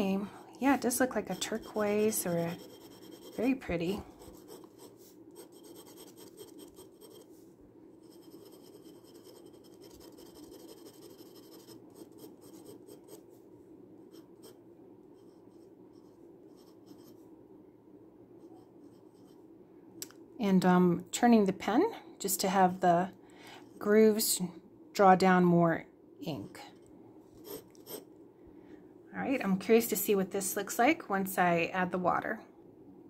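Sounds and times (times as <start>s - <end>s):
pen nib scratching on paper: 1.0s - 7.3s, 8.0s - 13.2s, 27.4s - 28.0s.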